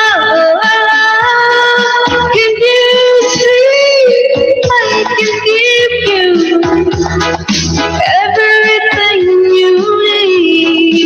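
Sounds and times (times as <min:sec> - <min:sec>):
backing music with low beat: 0:00.0 - 0:11.0.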